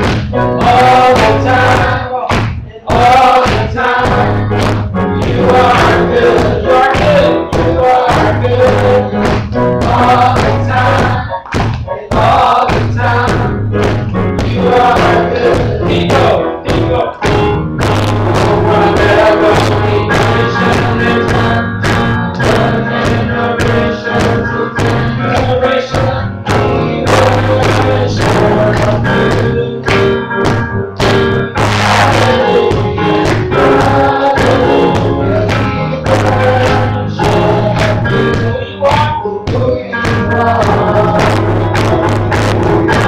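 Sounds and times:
man singing into a microphone: 0.0 - 13.6, 14.5 - 17.4, 18.0 - 30.2, 31.6 - 42.2
keyboard accompaniment: 0.0 - 43.0
steady beat: 0.0 - 43.0.

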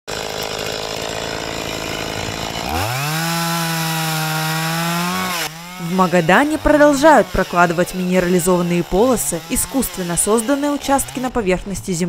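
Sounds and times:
chainsaw revving: 0.1 - 11.6.

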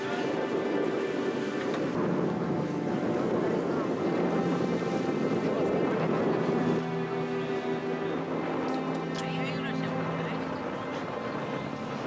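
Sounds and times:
boat moving on water: 0.0 - 12.0
wind noise on microphone: 0.0 - 12.0.

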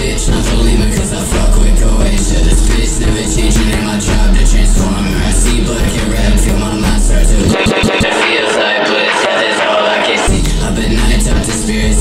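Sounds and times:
rap beat with heavy sub-bass: 0.0 - 12.0.

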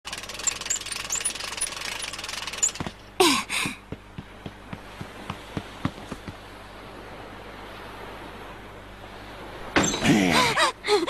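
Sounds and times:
fast rattling clicking: 0.1 - 3.0.

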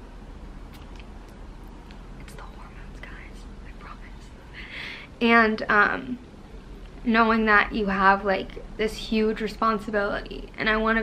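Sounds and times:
faint room hum: 0.0 - 11.0
woman breathing: 4.4 - 5.2.

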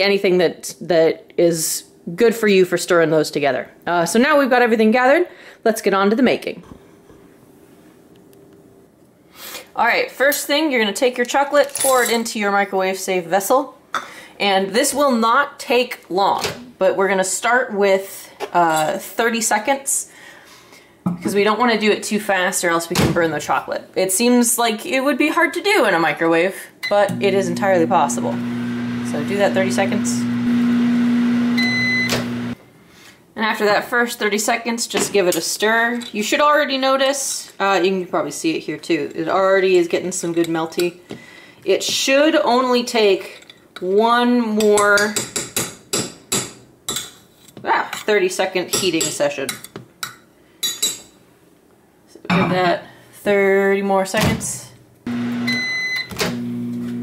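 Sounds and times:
microwave oven humming: 26.9 - 32.6, 55.1 - 57.0
microwave beep: 30.3 - 32.6, 55.1 - 57.0.

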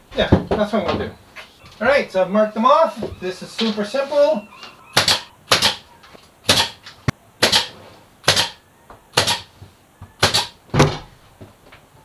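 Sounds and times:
nail gun shots into wood: 5.0 - 5.8, 6.5 - 6.8, 7.4 - 8.6, 9.2 - 9.5, 10.2 - 11.0.

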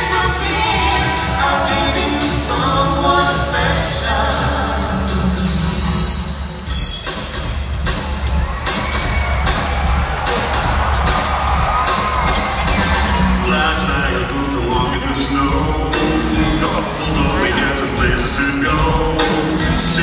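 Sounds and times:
live band music: 0.0 - 20.0
steady drum beat: 0.0 - 20.0
crowd cheering: 6.4 - 20.0.

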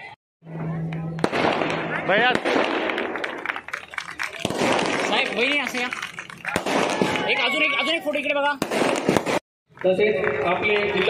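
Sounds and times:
firecrackers crackling: 1.1 - 11.0.

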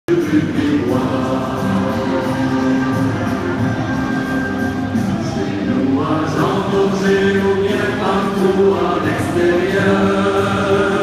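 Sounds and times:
choir singing slow song: 0.1 - 11.0.

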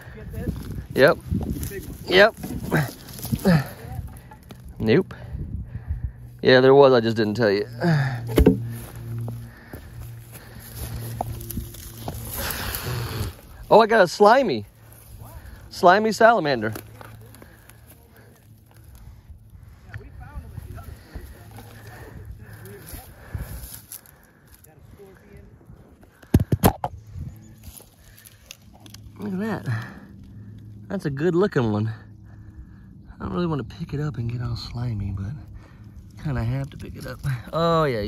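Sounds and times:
dry grass rustling: 0.0 - 26.2, 26.9 - 31.0
low steady hum: 0.0 - 38.0
rocks knocking: 8.3 - 9.0.

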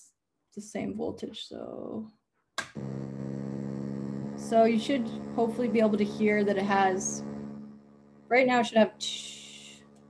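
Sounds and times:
electronic synthesizer drone: 2.7 - 10.0.

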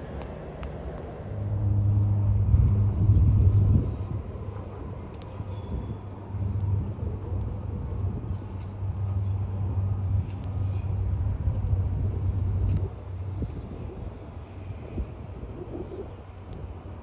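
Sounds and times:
train rumbling on track: 0.0 - 17.0.

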